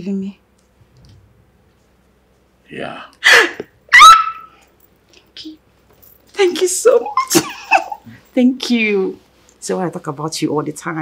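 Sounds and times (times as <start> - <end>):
woman squealing: 3.2 - 4.6.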